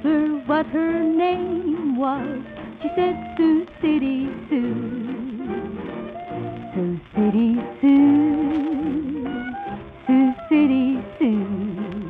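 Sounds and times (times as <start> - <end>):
shellac record playback: 0.0 - 12.0
band accompaniment: 0.8 - 12.0.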